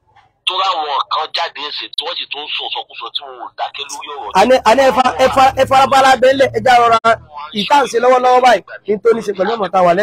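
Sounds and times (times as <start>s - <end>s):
person talking telephone-like voice: 0.4s - 6.4s, 7.0s - 10.0s.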